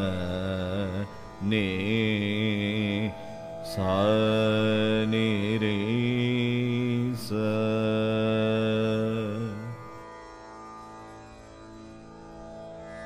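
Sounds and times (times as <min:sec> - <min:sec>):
man singing long ornamented notes: 0:00.0 - 0:10.1.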